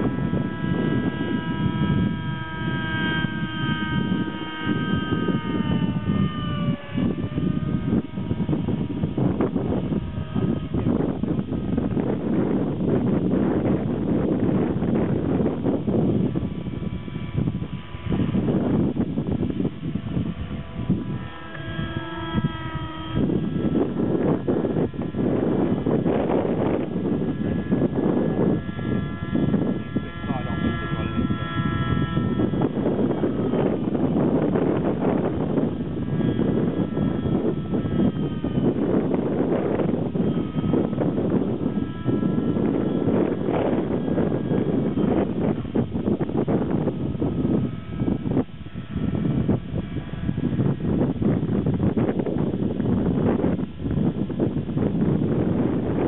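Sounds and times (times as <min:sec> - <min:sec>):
model helicopter engine whine: 0:00.0 - 0:56.0
wind noise on microphone: 0:00.0 - 0:56.0.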